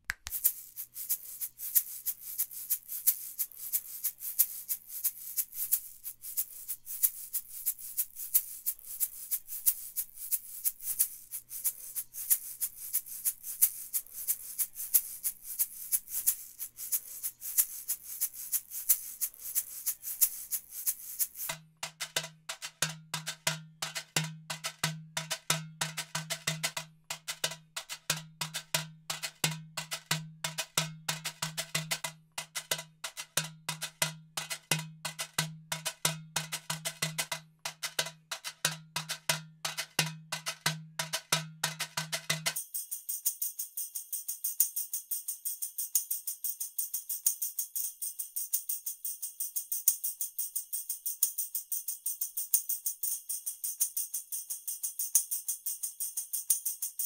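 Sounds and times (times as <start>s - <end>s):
shaker in steady rhythm: 0.0s - 57.0s.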